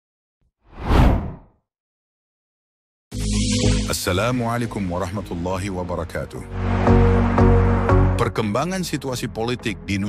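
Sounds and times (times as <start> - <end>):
whoosh sound effect: 0.7 - 1.4.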